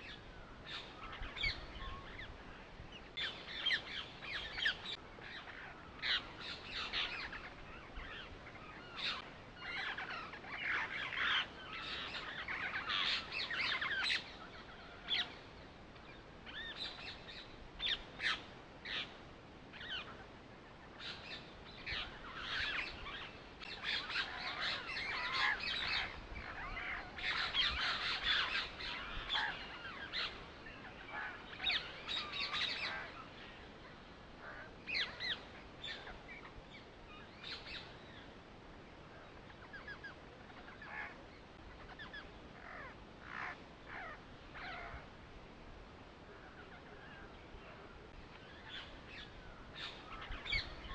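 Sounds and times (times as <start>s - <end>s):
birds chirping: 0.0s - 45.1s, 45.8s - 50.9s.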